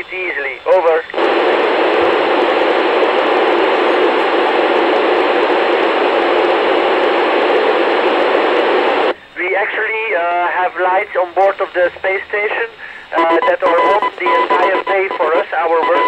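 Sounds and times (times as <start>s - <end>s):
radio static hiss: 0.0s - 16.0s.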